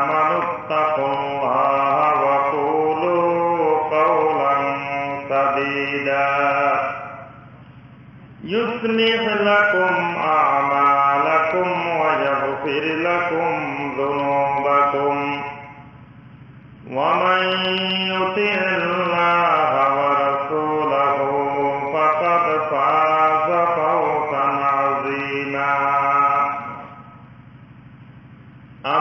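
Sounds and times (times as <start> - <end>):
man chanting melodically: 0.0 - 7.6, 8.3 - 16.0, 16.8 - 27.2, 28.8 - 29.0.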